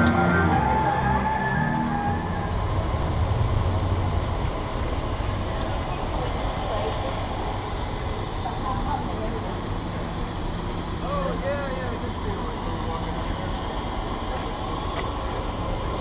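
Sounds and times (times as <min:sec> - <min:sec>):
music: 0:00.0 - 0:02.2
traffic: 0:00.0 - 0:16.0
rain on city street: 0:01.9 - 0:16.0.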